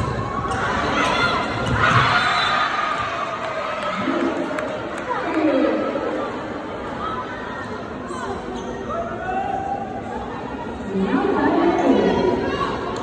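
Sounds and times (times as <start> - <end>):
indistinct chatter in a hall: 0.0 - 13.0.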